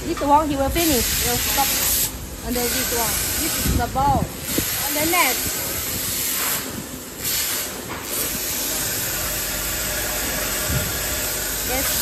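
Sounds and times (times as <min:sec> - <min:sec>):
factory machinery hissing: 0:00.0 - 0:12.0.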